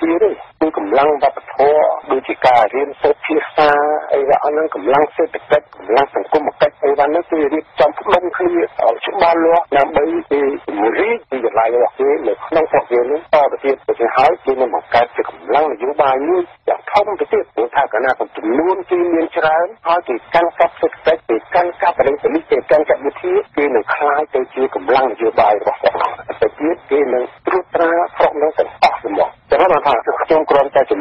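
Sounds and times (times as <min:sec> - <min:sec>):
radio news voice speaking: 0:00.0 - 0:31.0.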